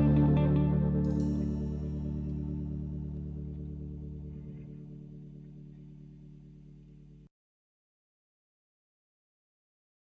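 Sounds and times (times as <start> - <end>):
blues-rock band chord ringing: 0.0 - 5.8
distorted electric guitar: 0.0 - 7.2.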